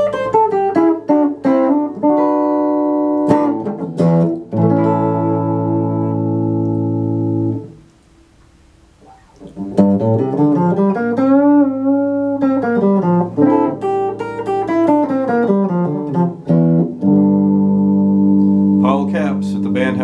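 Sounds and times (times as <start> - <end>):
electric guitar chord: 0.0 - 7.8, 9.0 - 20.0
electric guitar lead line: 0.0 - 20.0.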